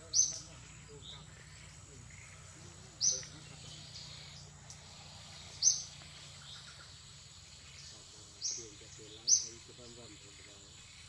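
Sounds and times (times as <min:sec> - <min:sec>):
faint forest hum: 0:00.0 - 0:11.0.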